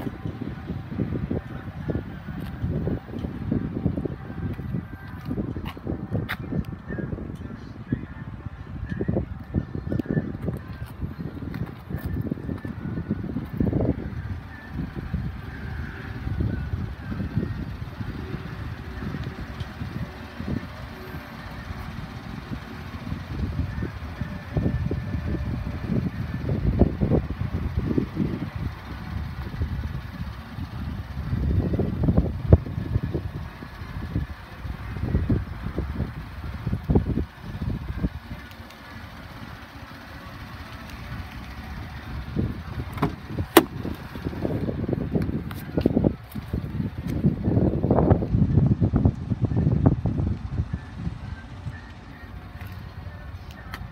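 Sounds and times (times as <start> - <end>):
handling rumble: 0.0 - 53.9
wind buffeting microphone: 0.0 - 53.9
car door handle clicks: 42.9 - 44.0.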